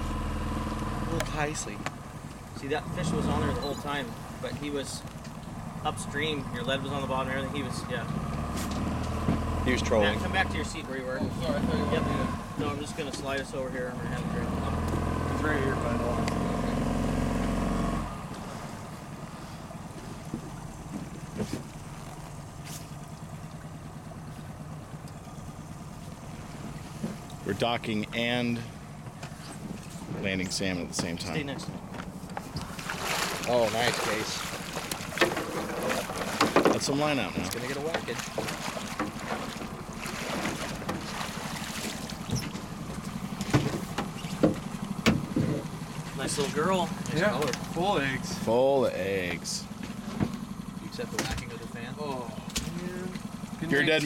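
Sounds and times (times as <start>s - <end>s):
boat motor running: 0.0s - 54.0s.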